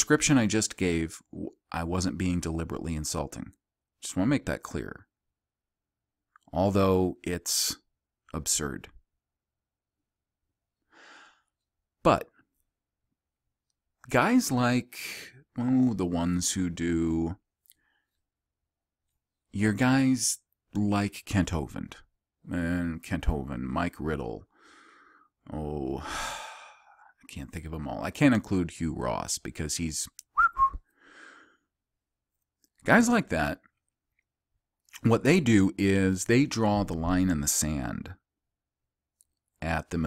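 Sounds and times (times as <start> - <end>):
soft breath out: 10.9 - 11.6
man whistling short note: 30.4 - 30.8.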